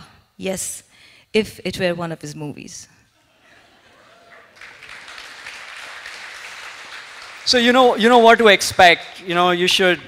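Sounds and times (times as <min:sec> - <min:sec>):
audience applause: 0:04.0 - 0:08.0.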